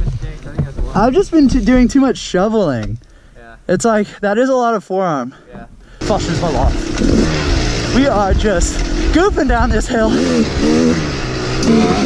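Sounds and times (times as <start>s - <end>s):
dirt bike engine running: 6.0s - 12.0s
steady rushing noise: 6.0s - 12.0s.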